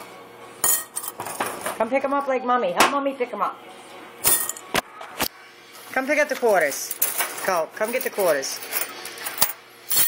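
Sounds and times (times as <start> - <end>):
coins clinking: 0.6 - 1.4, 4.2 - 4.6, 6.6 - 10.0.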